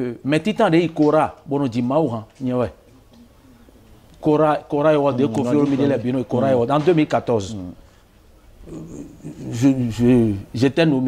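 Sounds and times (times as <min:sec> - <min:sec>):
man speaking: 0:00.0 - 0:02.8, 0:04.2 - 0:07.8, 0:08.7 - 0:11.0
man murmuring hesitantly: 0:08.6 - 0:10.5.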